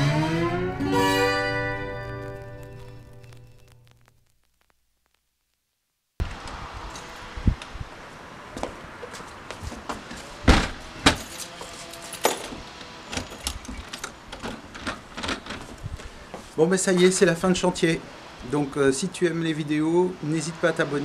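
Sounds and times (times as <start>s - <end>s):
outdoor background noise: 0.0s - 21.0s
loud door knocks: 10.5s - 11.2s.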